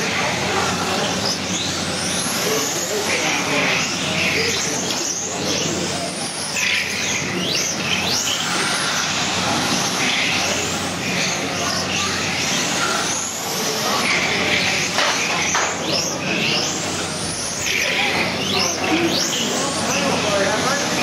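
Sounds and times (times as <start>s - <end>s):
electric toy car motors whining: 0.0s - 21.0s.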